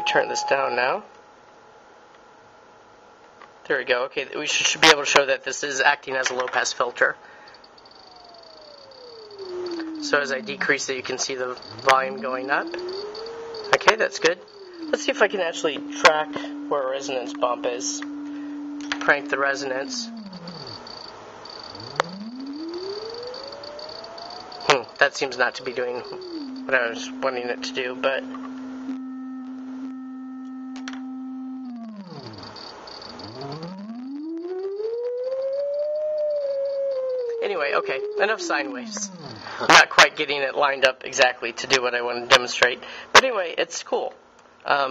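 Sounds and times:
synthesizer tone gliding down: 0.0 - 0.9, 8.0 - 39.9
faint high whine: 0.0 - 1.2, 4.0 - 43.0.

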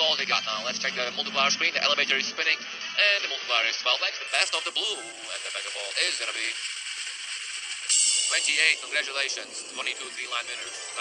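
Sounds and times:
game show music: 0.0 - 11.0.

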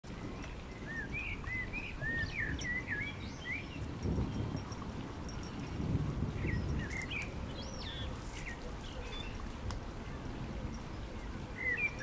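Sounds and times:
songbirds chirping: 0.0 - 12.0.

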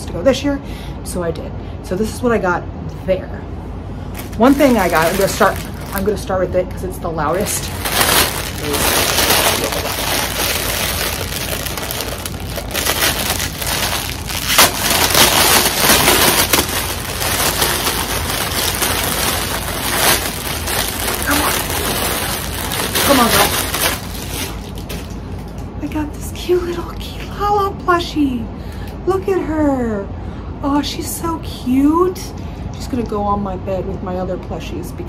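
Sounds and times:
packaging rustling and crackling: 4.1 - 6.4, 7.3 - 25.7.

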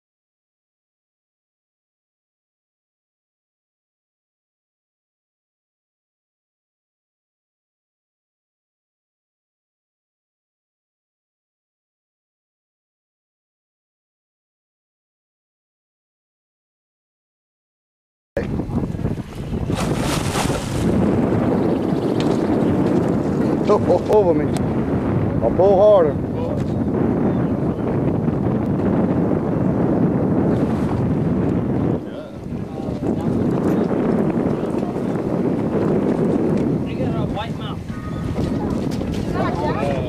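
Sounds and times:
water noise: 18.4 - 40.0
wind across microphone: 18.4 - 40.0
voices: 36.8 - 40.0.

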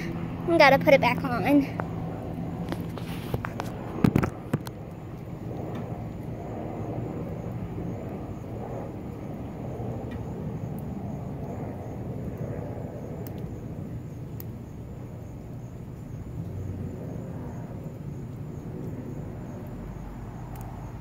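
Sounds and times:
low outdoor rumble: 0.0 - 21.0
faint sharp ticks: 13.2 - 13.6, 14.4 - 14.6, 18.8 - 21.0.

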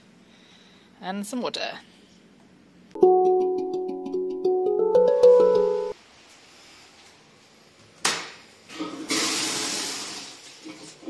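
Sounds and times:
handpan melody: 3.0 - 6.0.

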